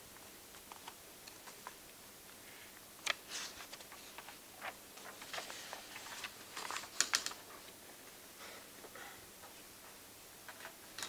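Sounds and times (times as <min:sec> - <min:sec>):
paper sheets being handled: 0:03.0 - 0:07.8.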